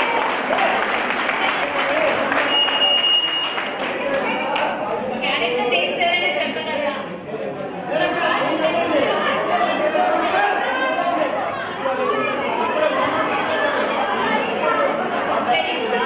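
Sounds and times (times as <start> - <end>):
background chatter: 0.0 - 16.0.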